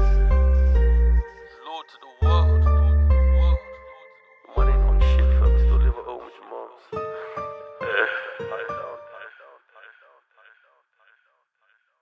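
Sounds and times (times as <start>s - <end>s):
echoing vocal fragment: 0.0s - 12.0s.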